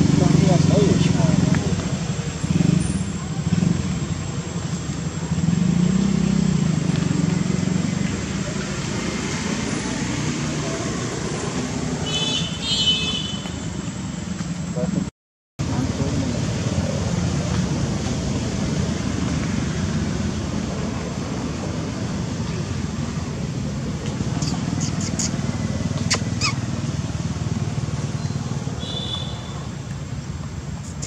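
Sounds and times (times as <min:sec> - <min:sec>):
background voices talking: 0:00.0 - 0:05.4
low engine hum: 0:15.6 - 0:28.8
high-pitched chirping call: 0:24.3 - 0:26.7.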